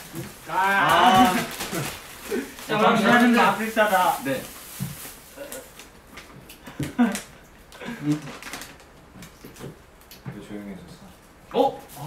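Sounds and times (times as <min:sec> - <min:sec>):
plastic bags rustling: 0:00.0 - 0:09.8
person exclaiming: 0:00.5 - 0:03.4
person laughing: 0:06.7 - 0:08.3.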